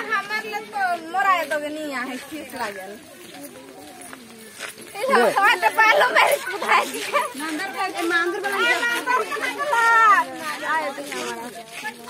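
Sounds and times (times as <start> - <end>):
women and children talking: 0.0 - 12.0.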